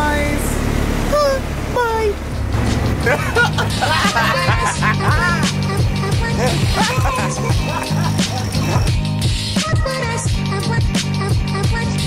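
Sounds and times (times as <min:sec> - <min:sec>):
steady low rumble: 0:00.6 - 0:09.6
person singing over music: 0:04.1 - 0:09.0.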